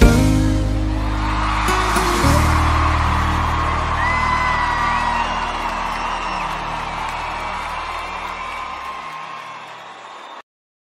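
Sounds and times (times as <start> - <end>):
crowd cheering and whooping: 0.0 - 10.4.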